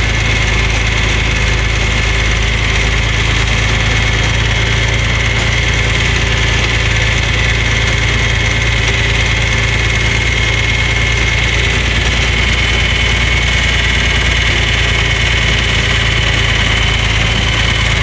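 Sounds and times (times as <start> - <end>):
high whine: 0.0 - 18.0
tractor engine running: 0.0 - 18.0.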